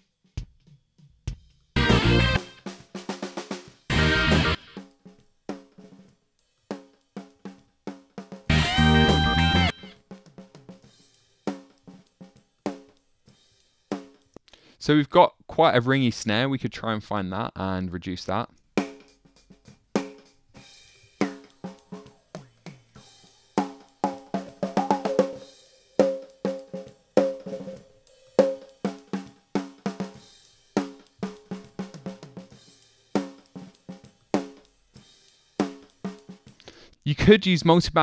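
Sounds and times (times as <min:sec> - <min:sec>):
snare drum groove with ringing overtone: 0:00.0 - 0:14.2, 0:18.8 - 0:36.6.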